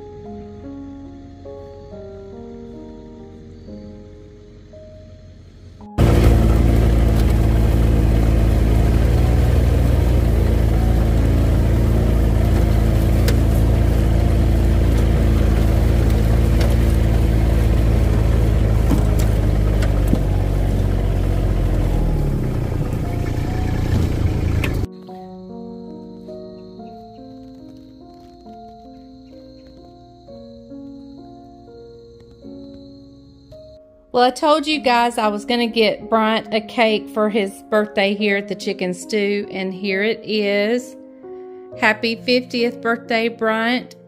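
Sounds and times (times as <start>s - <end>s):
soft music: 0.0s - 44.0s
loud engine running steadily: 6.0s - 24.9s.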